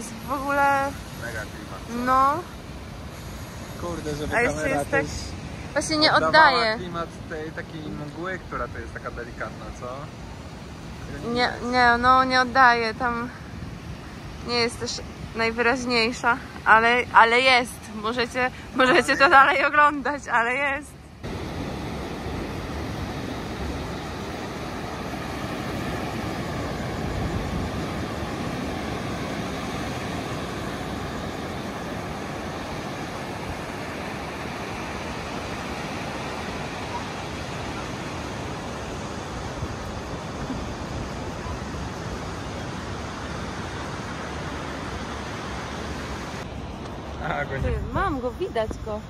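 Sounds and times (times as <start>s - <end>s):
surf breaking on beach: 21.2s - 47.8s.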